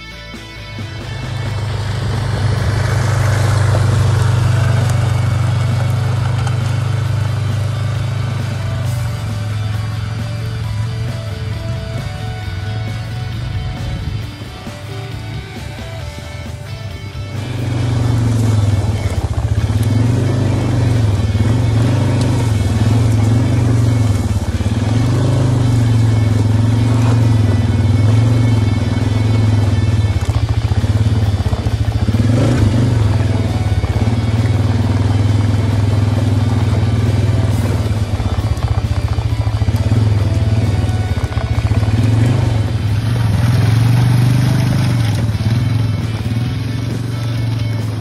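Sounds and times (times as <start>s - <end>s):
music: 0.0s - 48.0s.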